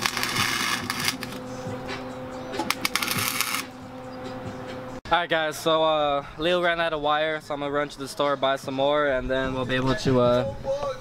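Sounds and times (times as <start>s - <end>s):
welder arc crackling: 0.0s - 1.5s, 2.7s - 3.7s
music: 0.0s - 11.0s.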